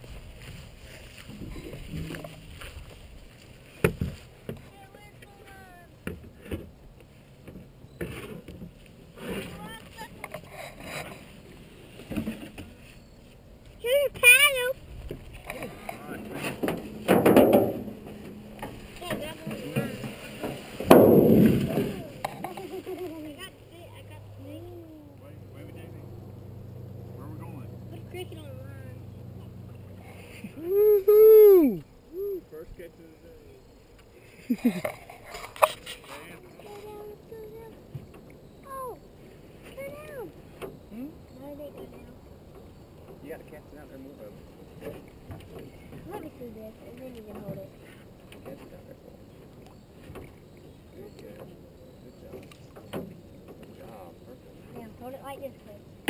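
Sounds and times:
scattered knocks: 0:16.4 - 0:22.6.

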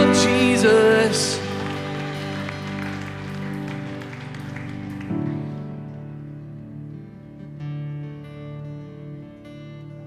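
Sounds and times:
slow keyboard chords: 0:00.0 - 0:10.0.

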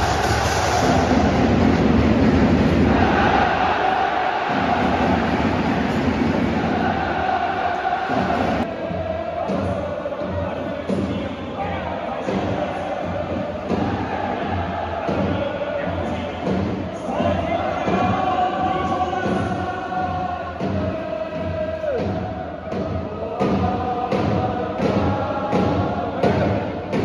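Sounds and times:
music over loudspeakers: 0:00.0 - 0:03.7
stadium crowd noise: 0:00.0 - 0:27.0.

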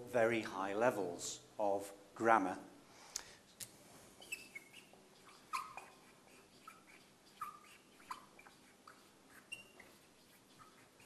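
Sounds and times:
marker squeaking on whiteboard: 0:04.2 - 0:11.0.

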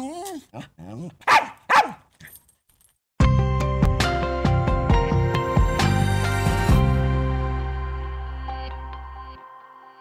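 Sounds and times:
small dog barking: 0:01.2 - 0:02.1.

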